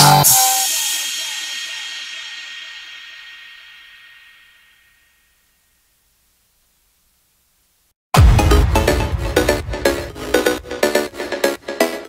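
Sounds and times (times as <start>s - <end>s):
crash cymbal ringing: 0.0s - 6.0s.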